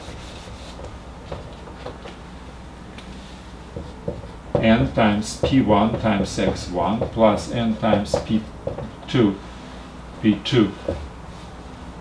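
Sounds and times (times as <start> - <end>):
eraser scrubbing whiteboard: 0.0 - 2.0.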